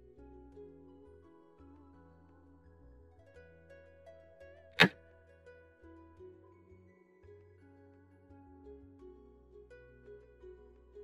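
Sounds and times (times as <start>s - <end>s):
plucked-string background music: 0.0s - 11.0s.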